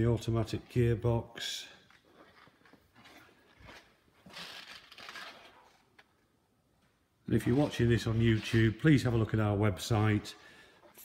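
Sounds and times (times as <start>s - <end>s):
rustling handling noise: 1.8s - 6.2s.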